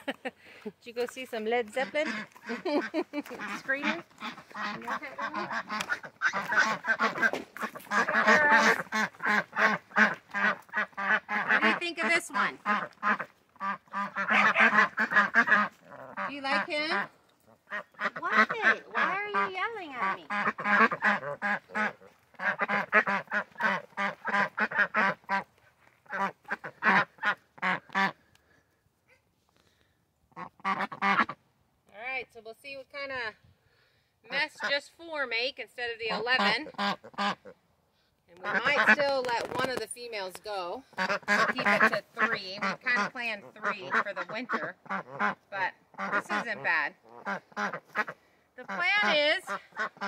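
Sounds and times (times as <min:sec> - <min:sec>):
ducks quacking loudly: 0:01.6 - 0:28.5, 0:30.3 - 0:31.5, 0:34.3 - 0:35.0, 0:35.9 - 0:37.6, 0:38.3 - 0:50.0.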